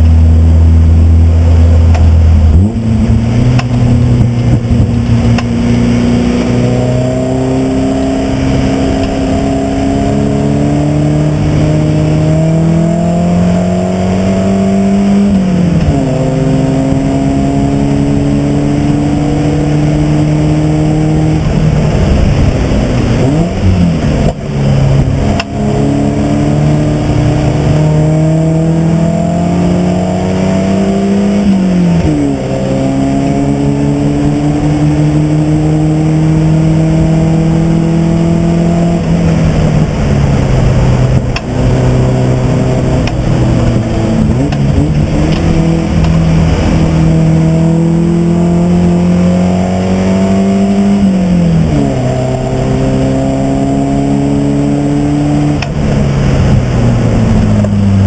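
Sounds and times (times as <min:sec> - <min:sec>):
race car engine accelerating: 0:00.0 - 0:58.0.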